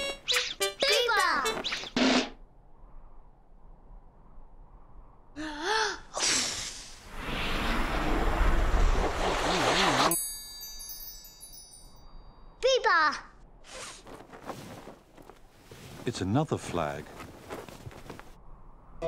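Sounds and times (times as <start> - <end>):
descending magic sparkle chime: 10.1 - 12.2.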